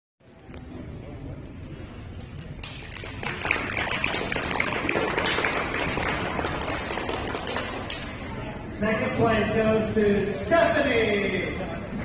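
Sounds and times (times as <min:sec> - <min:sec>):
audience applauding: 0:02.6 - 0:08.0.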